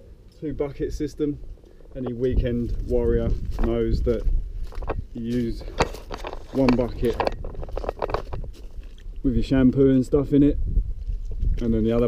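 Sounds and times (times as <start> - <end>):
low rumble on microphone: 0.0 - 12.0
man talking: 0.4 - 1.4, 2.0 - 4.3, 5.1 - 5.8, 6.5 - 7.3, 9.2 - 10.6, 11.6 - 12.0.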